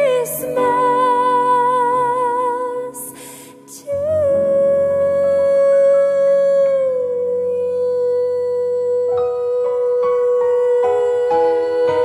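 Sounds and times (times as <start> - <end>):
soft instrumental accompaniment: 0.0 - 12.0
woman singing a long note: 0.0 - 12.0.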